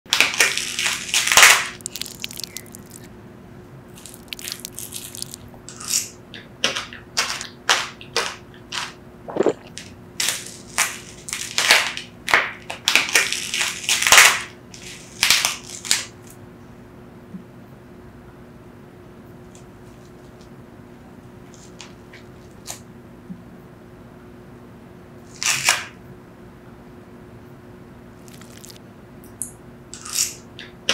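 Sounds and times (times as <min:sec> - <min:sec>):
crunching while eating: 0:00.1 - 0:03.1, 0:03.9 - 0:16.2, 0:28.2 - 0:28.8, 0:29.9 - 0:30.5
fruit shell cracking: 0:00.6 - 0:03.1, 0:04.0 - 0:06.0, 0:28.2 - 0:28.8.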